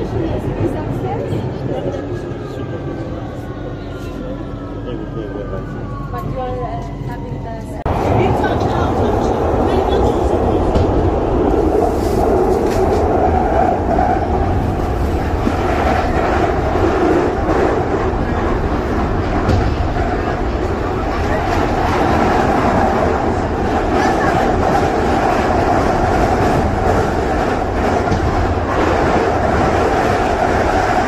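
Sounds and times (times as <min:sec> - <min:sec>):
train wheels on rails: 0:07.9 - 0:31.0.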